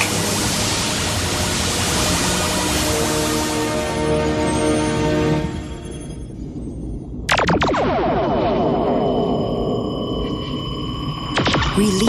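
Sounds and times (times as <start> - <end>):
synthesized falling sweeps: 0.0 - 11.7
steady high ringing tone: 3.8 - 12.0.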